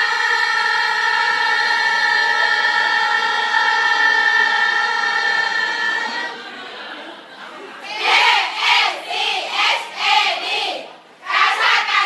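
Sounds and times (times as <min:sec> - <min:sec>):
women singing a long note: 0:00.0 - 0:06.9, 0:07.8 - 0:12.0.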